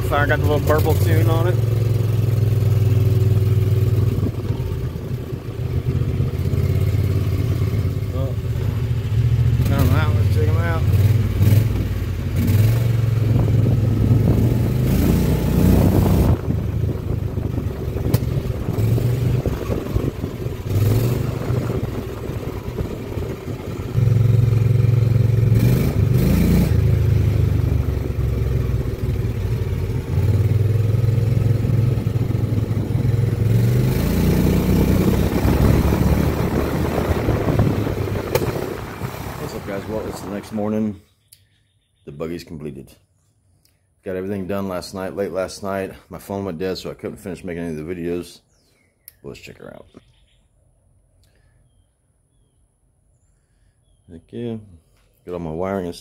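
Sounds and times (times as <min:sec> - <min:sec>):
golf cart engine revving: 0:00.0 - 0:40.9.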